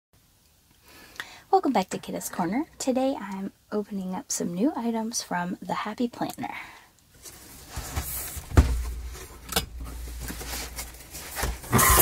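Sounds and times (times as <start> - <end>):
cardboard rustling: 7.2 - 12.0.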